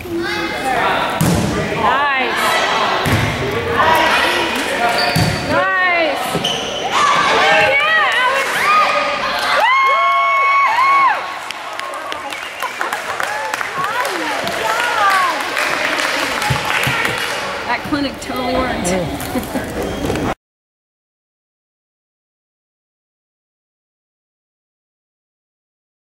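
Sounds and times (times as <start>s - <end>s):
volleyball thuds: 1.2s - 1.7s, 3.0s - 3.6s
high-pitched cheers: 8.4s - 15.9s.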